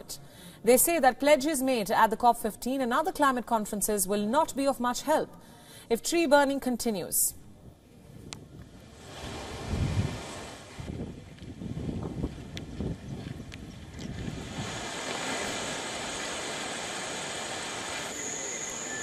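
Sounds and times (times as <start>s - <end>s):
wind buffeting microphone: 8.0s - 16.6s
steady hiss: 8.6s - 11.7s, 13.5s - 19.0s
thin high whine: 15.1s - 19.0s.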